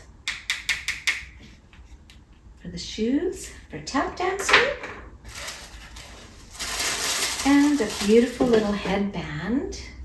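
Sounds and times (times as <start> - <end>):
paper packaging rustling: 5.2 - 8.8.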